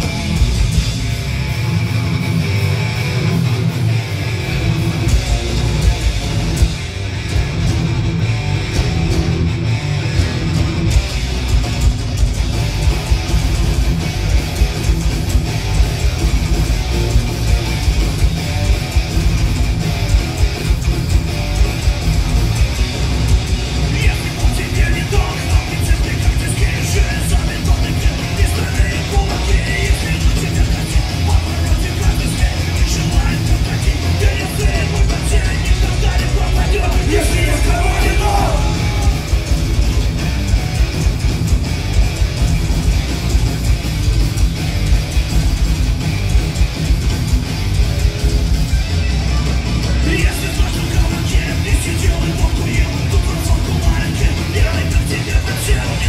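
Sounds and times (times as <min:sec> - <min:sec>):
bass guitar: 0:00.0 - 0:56.0
distorted electric guitars: 0:00.0 - 0:56.0
drums with driving beat: 0:00.0 - 0:56.0
metal band playing live: 0:00.0 - 0:56.0
person shouting vocals: 0:36.4 - 0:39.4.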